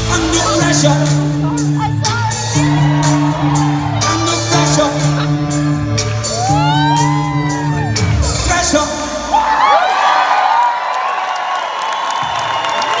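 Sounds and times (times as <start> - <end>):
crowd cheering and whooping: 2.4 - 8.5, 9.2 - 13.0.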